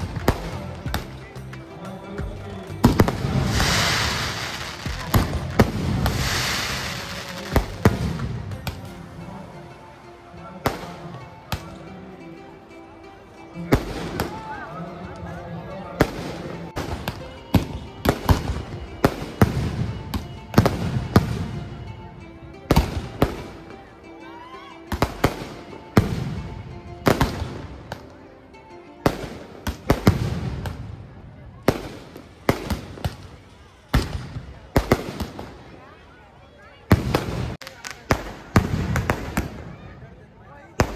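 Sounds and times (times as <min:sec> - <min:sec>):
firecrackers bursting: 0:02.6 - 0:09.2, 0:16.0 - 0:21.7, 0:29.1 - 0:30.8, 0:31.6 - 0:35.7, 0:36.9 - 0:39.7.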